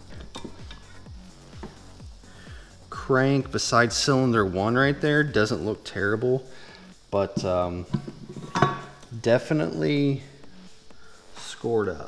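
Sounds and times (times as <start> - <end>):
background music with steady beat: 0.0 - 12.0
metallic clinks and knocks: 7.4 - 9.0.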